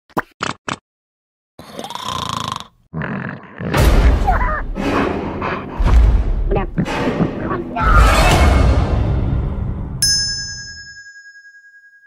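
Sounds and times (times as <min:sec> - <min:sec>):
cartoon vocal sound effects: 0:06.5 - 0:08.2.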